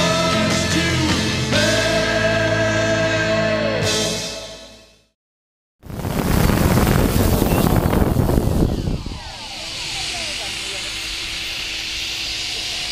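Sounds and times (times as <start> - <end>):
drone rotors whining: 5.9 - 12.9.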